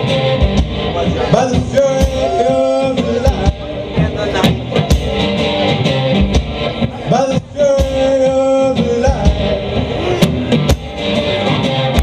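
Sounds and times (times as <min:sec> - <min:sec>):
guitar: 0:00.0 - 0:12.0.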